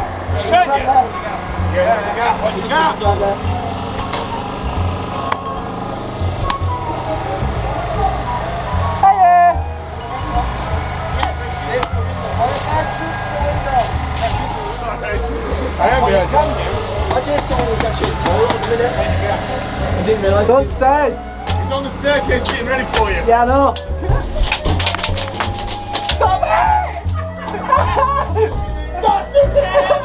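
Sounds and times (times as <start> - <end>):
low pulsing drone: 0.0 - 30.0.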